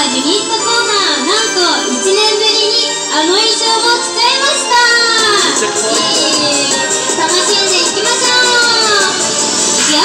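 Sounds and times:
backing music with steady beat: 0.0s - 10.0s.

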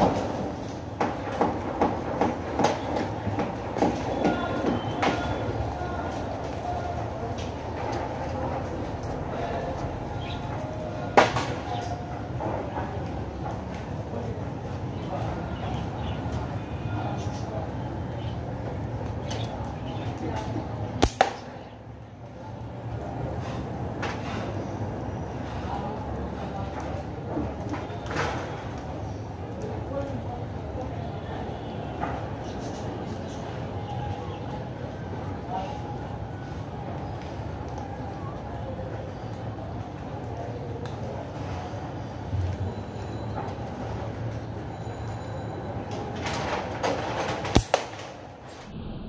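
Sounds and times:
slingshot rubber bands snapping: 47.5s - 48.0s
low background rumble: 48.6s - 49.0s.

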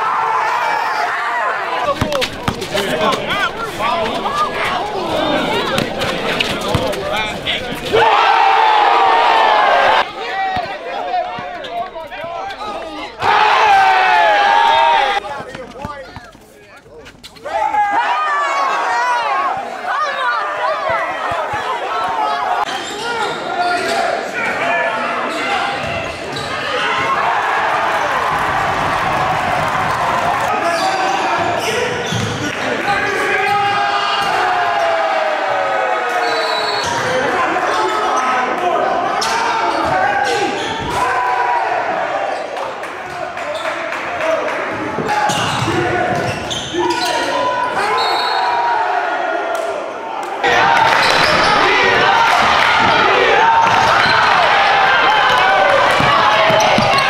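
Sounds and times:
voices and shouts: 0.0s - 57.0s
basketball bouncing on court: 1.9s - 3.3s, 5.6s - 7.8s, 55.9s - 57.0s.

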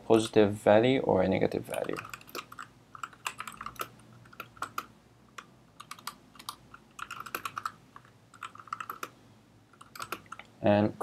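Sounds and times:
computer keyboard typing: 1.7s - 10.5s.

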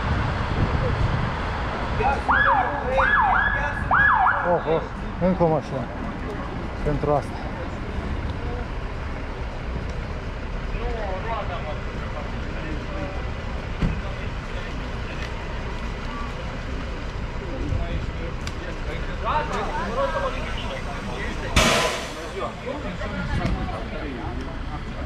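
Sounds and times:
street traffic: 0.0s - 25.0s
faint voices: 1.8s - 25.0s
bus engine idling: 4.7s - 25.0s
thump: 21.6s - 22.4s.

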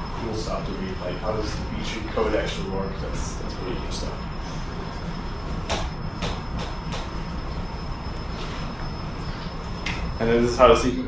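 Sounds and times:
faint high-pitched whine: 0.0s - 11.0s
low room rumble: 0.0s - 11.0s.

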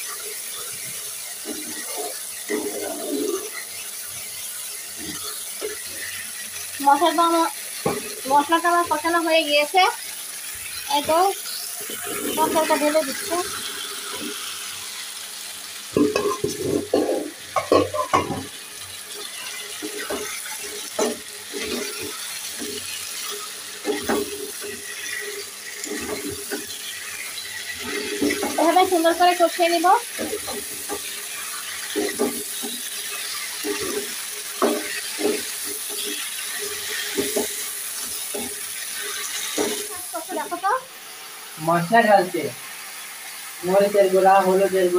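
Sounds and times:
vegetables sizzling in oil: 0.0s - 44.9s
metal spatula scraping a pan: 16.0s - 18.5s, 19.3s - 39.9s.

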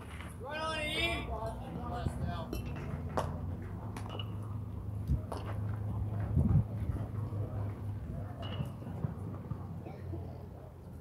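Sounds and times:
faint distant voices: 0.4s - 11.0s.

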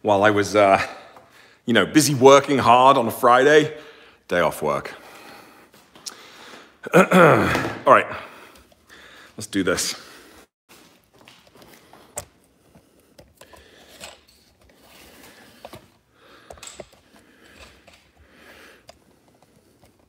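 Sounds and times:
phone handling clicks and rustles: 11.0s - 14.8s, 15.5s - 18.2s, 18.8s - 20.0s.

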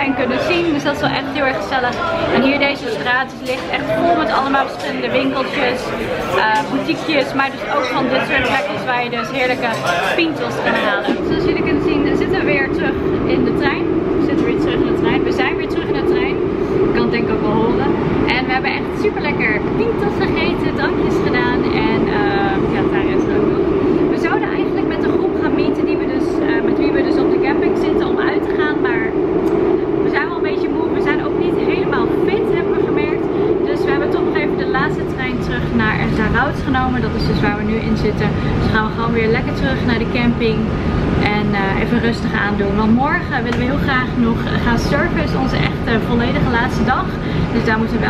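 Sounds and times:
train rumbling: 0.0s - 48.0s
woman talking: 0.0s - 48.0s.

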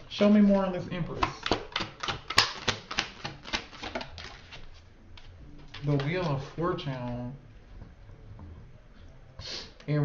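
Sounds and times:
cards being shuffled: 0.4s - 7.2s.

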